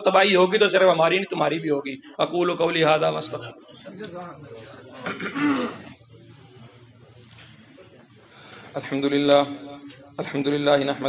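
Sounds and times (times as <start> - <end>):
man clearing his throat: 5.0 - 6.0.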